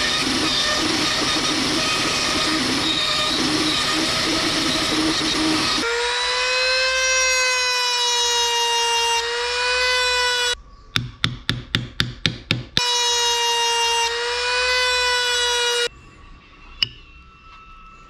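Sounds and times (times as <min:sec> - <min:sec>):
rotary tool high whine: 0:00.0 - 0:10.6, 0:12.8 - 0:18.0.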